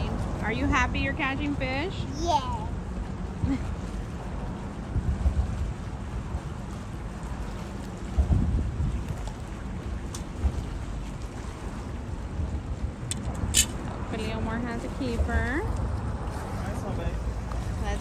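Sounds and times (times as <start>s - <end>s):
wind buffeting microphone: 2.7s - 18.0s.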